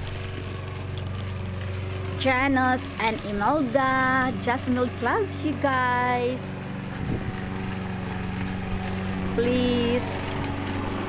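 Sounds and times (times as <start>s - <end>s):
lawn mower running: 0.0s - 11.0s.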